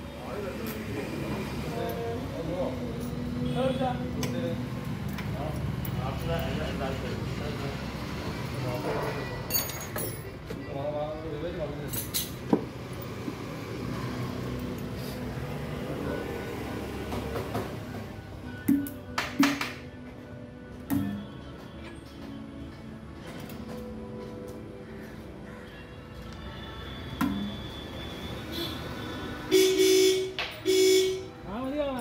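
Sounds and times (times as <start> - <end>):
metallic clinks from dent-pulling tools: 2.9 - 3.4, 9.5 - 10.4, 11.8 - 12.5
background music: 15.4 - 32.0.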